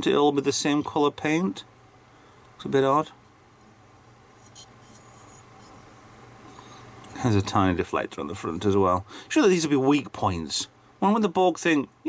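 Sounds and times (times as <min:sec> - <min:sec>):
low steady hum: 0:00.0 - 0:12.0
fingers rustling on model: 0:04.4 - 0:06.0.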